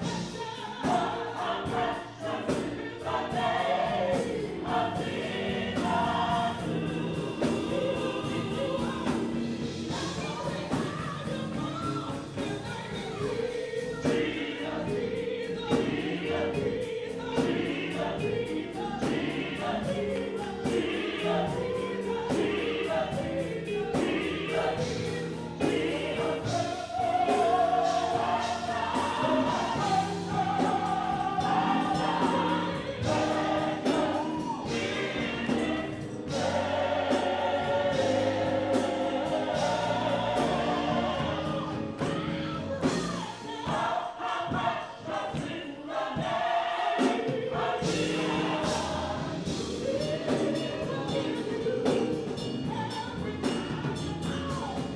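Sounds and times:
choir singing: 0.0s - 54.9s
keyboard: 0.0s - 54.9s
steady drum beat: 0.0s - 54.9s
woman singing lead: 7.6s - 36.2s.

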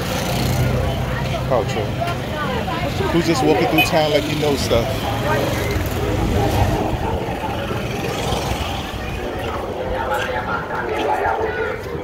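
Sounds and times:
street voices: 0.0s - 12.0s.

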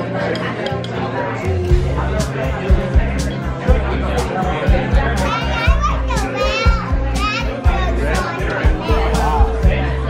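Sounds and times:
background music with steady beat: 0.0s - 10.0s
young child talking: 5.0s - 9.6s.

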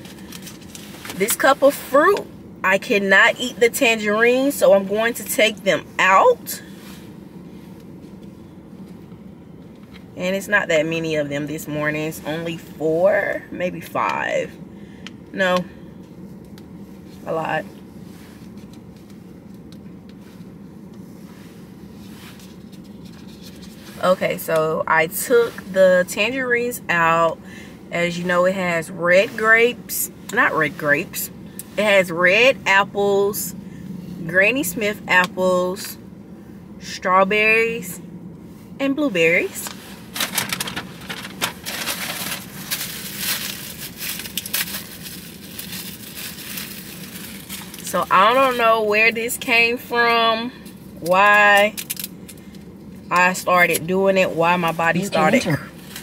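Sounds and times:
low hum inside car: 0.0s - 56.0s
paper packaging crinkling: 40.1s - 47.9s.

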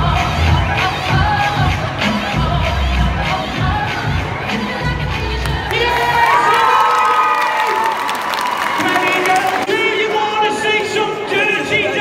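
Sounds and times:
music with heavy bass beat: 0.0s - 5.7s
crowd cheering and screaming: 5.6s - 9.9s.

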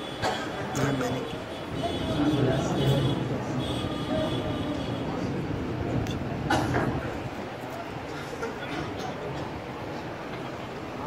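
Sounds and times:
crowded hall room rumble: 0.0s - 11.0s.

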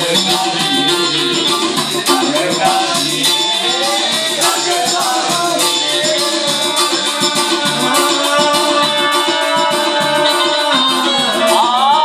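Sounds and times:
electric bass guitar plucked: 0.0s - 12.0s
music with rattling beat: 0.0s - 12.0s
person singing: 0.0s - 12.0s.

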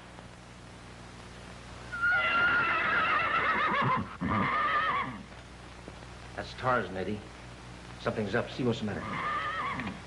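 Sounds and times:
horse whinnying: 1.9s - 5.3s, 9.0s - 10.0s.

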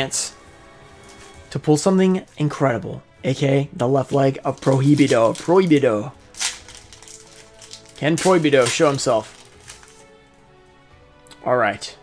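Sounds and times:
faint background music: 0.0s - 12.0s
foil wrapper tearing: 4.4s - 10.0s.

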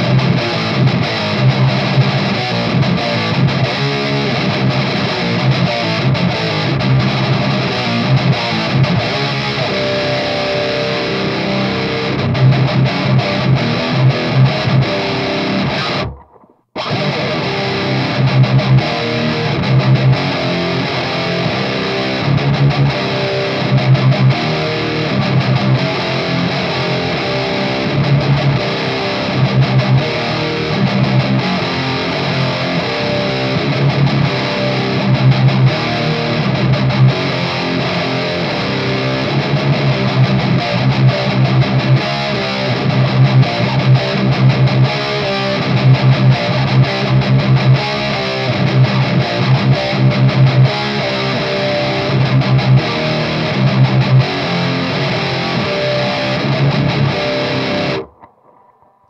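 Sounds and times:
distorted electric guitar chugging: 0.0s - 59.0s.

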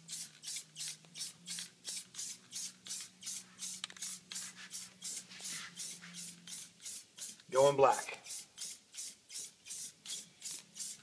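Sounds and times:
spray can hissing: 0.0s - 7.5s, 8.2s - 11.0s.

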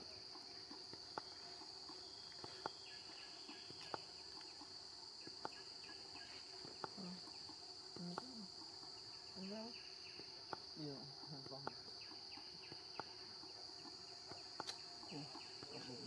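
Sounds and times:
insects droning: 0.0s - 16.0s.

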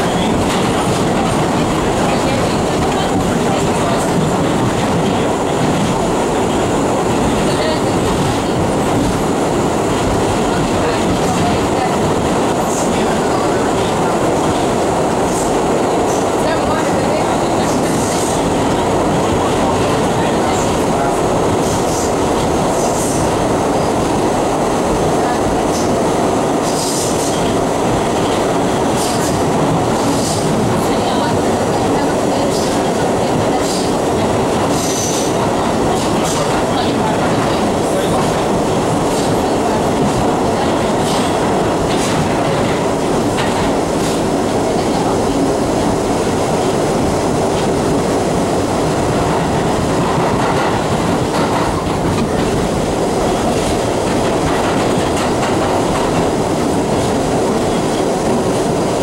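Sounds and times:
subway train rumbling on rails: 0.0s - 59.0s.

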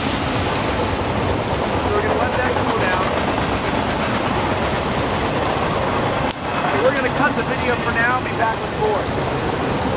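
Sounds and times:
campfire crackling and hissing: 0.0s - 9.9s.

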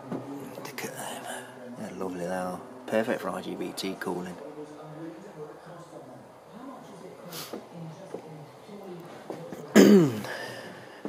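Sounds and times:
man coughing: 9.7s - 10.4s.

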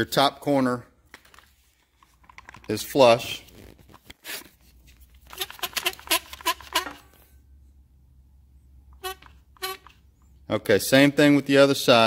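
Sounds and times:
clamp squeaks: 5.4s - 7.1s, 9.0s - 10.0s.

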